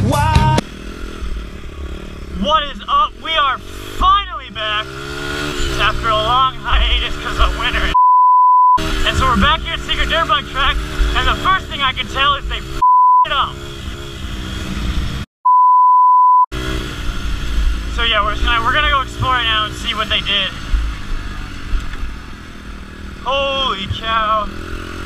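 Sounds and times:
rock music: 0.0s - 0.7s
dirt bike engine running: 0.0s - 8.0s, 8.8s - 15.3s, 16.5s - 25.0s
person talking: 2.4s - 4.9s, 5.7s - 8.0s, 9.0s - 13.6s, 23.3s - 24.5s
censor bleep: 7.9s - 8.8s, 12.8s - 13.3s, 15.4s - 16.5s.

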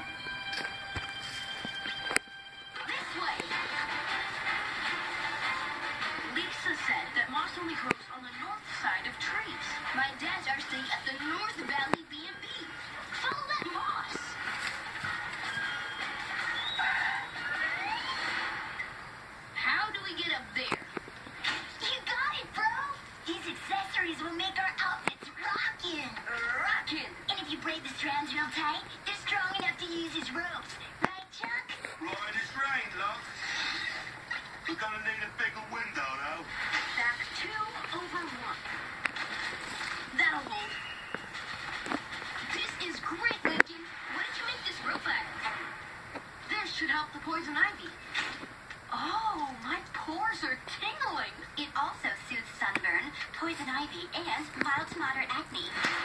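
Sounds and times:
faint background music: 0.0s - 56.0s.

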